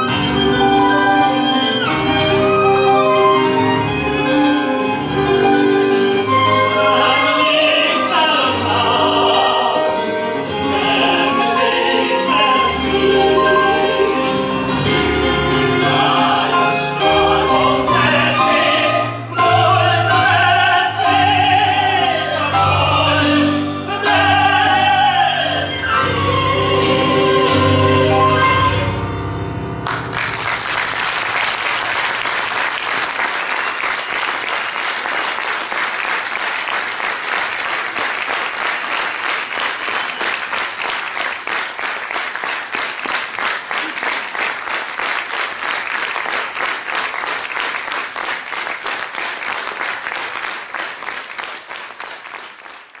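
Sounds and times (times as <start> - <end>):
audience applauding: 29.8 - 53.0.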